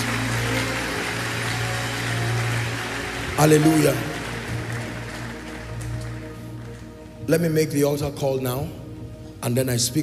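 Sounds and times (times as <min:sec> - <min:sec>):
crowd noise in large hall: 0:00.0 - 0:10.0.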